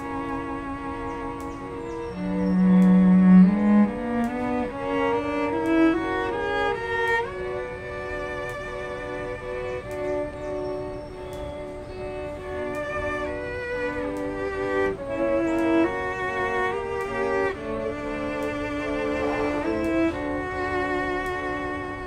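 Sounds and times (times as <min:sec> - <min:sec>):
low cello note: 0:00.0 - 0:22.0
string quartet bowed notes: 0:00.0 - 0:22.0.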